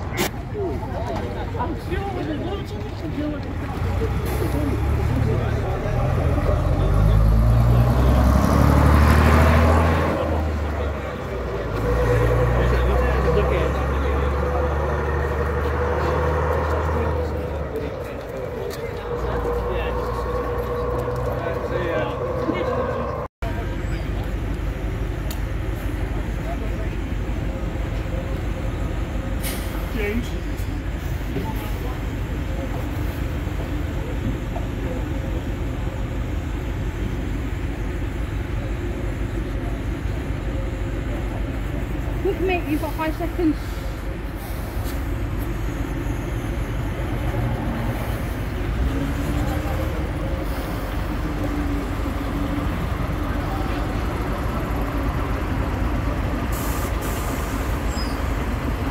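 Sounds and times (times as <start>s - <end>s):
bus diesel engine pulling away: 0.0s - 58.9s
outdoor background noise: 0.0s - 58.9s.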